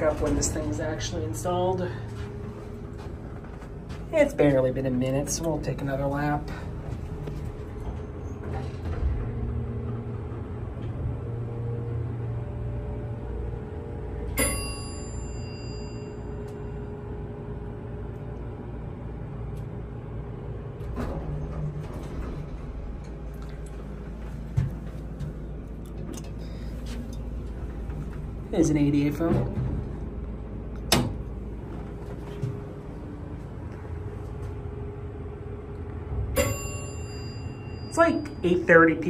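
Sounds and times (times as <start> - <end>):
elevator doors moving: 0.0 - 39.0
elevator humming: 0.0 - 39.0
metallic chime: 14.4 - 16.8.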